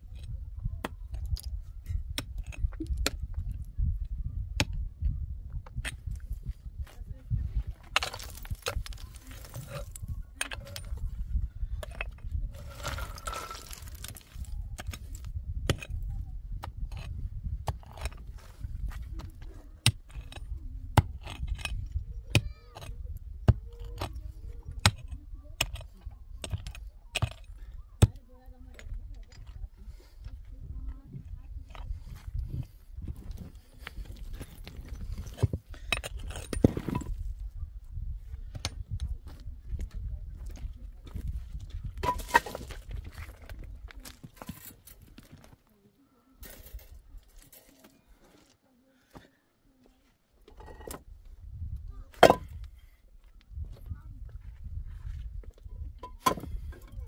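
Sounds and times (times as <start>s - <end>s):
pick striking rocky ground: 0.0s - 45.7s, 50.4s - 52.9s, 53.5s - 57.0s
rocks knocking together: 7.8s - 11.2s, 11.8s - 29.6s, 31.2s - 37.4s, 40.5s - 45.6s, 52.1s - 52.8s, 56.0s - 57.0s.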